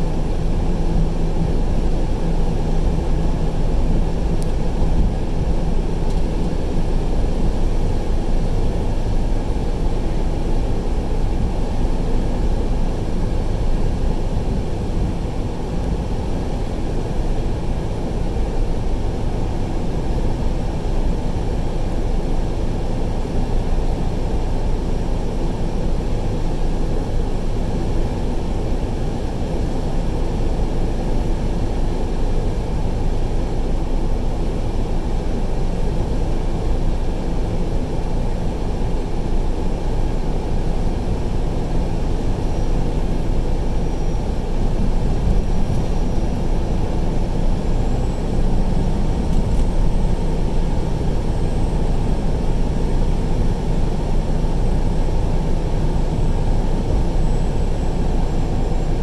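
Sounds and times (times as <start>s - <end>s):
vehicle driving interior rumble: 0.0s - 21.6s, 34.3s - 59.0s.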